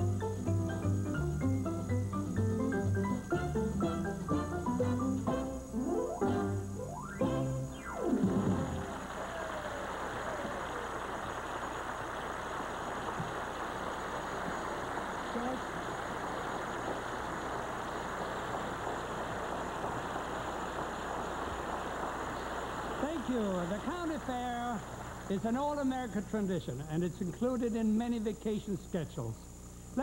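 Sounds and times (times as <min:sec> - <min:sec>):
audience applauding: 0:08.0 - 0:25.2
man speaking: 0:23.0 - 0:29.4.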